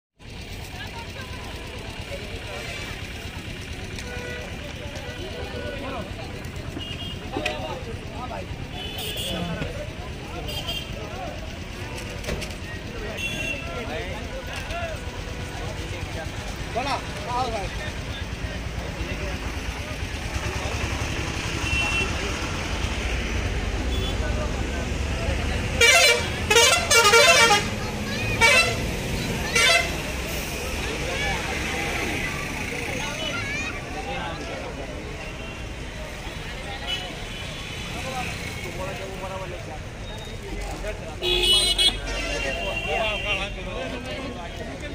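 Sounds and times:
crowd chatter: 0:00.2 - 0:44.9
vehicle horn honking: 0:04.0 - 0:05.9, 0:06.7 - 0:07.5, 0:08.7 - 0:09.7, 0:13.1 - 0:13.9, 0:21.6 - 0:22.2, 0:23.8 - 0:24.4, 0:25.8 - 0:27.8, 0:28.4 - 0:30.1, 0:41.2 - 0:43.6.

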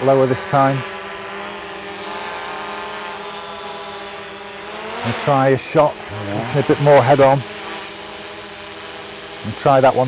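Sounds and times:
drone propellers buzzing: 0:00.0 - 0:10.0.

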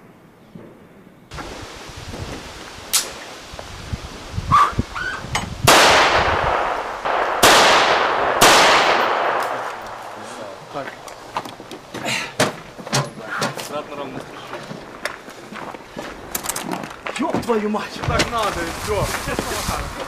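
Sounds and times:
loud sudden bangs: 0:05.6 - 0:10.6.

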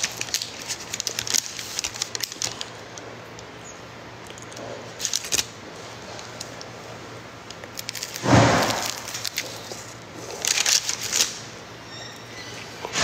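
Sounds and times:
paper wrapper crackles: 0:00.0 - 0:03.5, 0:04.2 - 0:11.5
taco crunch: 0:04.2 - 0:06.7, 0:07.4 - 0:11.4.

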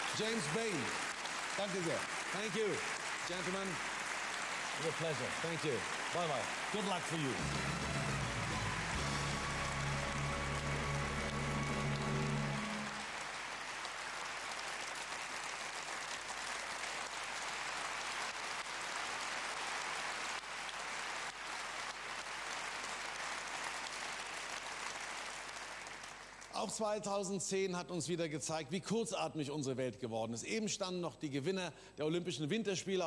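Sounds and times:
audience applauding: 0:00.0 - 0:27.0.

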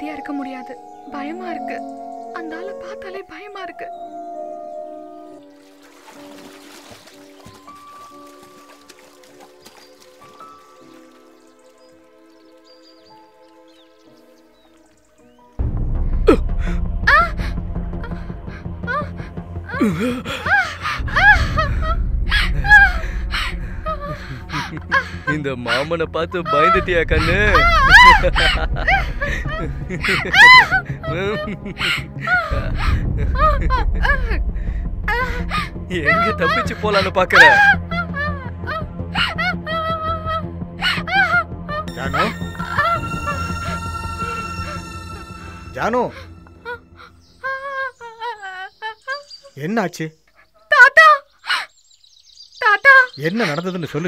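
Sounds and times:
water splashing: 0:05.4 - 0:13.7
woman crying out: 0:19.7 - 0:25.1, 0:26.5 - 0:34.4.

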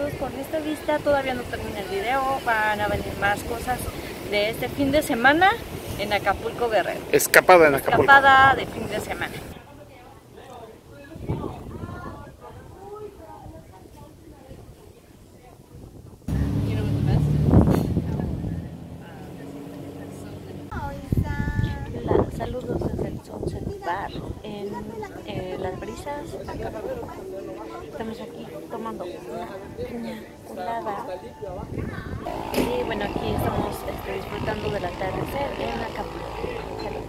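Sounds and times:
voices talking: 0:00.0 - 0:10.9, 0:16.3 - 0:37.0
motor engine starting and running: 0:16.3 - 0:20.7, 0:31.8 - 0:37.0
steady low rumble: 0:16.3 - 0:21.9, 0:31.7 - 0:37.0.

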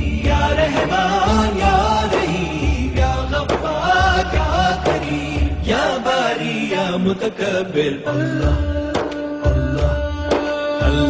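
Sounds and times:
person chanting devotional recitation: 0:00.0 - 0:11.0.

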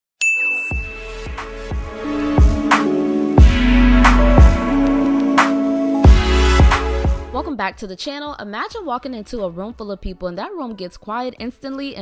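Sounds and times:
notification ding: 0:00.2 - 0:01.0
music with bass-drum hits: 0:00.7 - 0:07.5.

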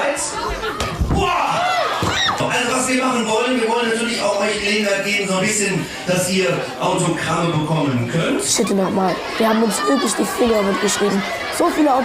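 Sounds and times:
voices calling out: 0:08.4 - 0:12.0.

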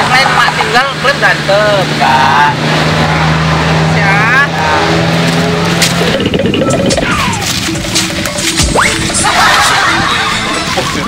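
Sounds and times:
vehicle engine running: 0:04.0 - 0:08.6.

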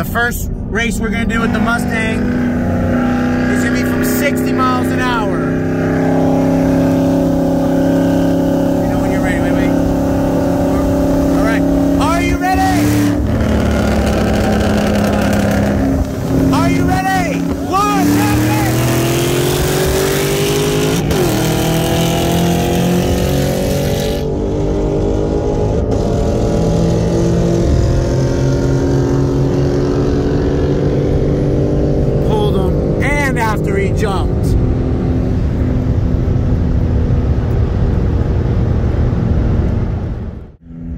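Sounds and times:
car engine at full throttle: 0:00.0 - 0:40.9.

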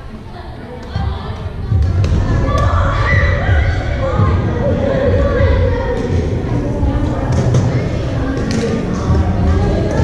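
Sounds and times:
background voices: 0:00.0 - 0:10.0
low rumble of thuds: 0:01.0 - 0:10.0.

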